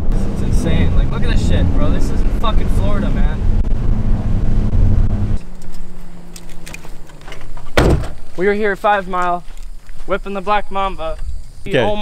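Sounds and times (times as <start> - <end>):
car driving on dirt road rumble: 0.0 - 9.8.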